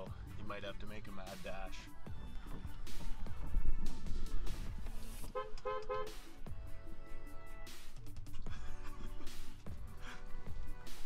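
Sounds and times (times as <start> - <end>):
background music: 0.0 - 11.0
car horn honks: 5.3 - 6.3.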